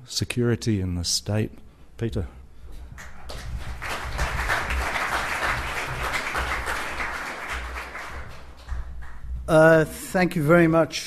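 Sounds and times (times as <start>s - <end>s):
audience applauding: 3.0s - 9.3s.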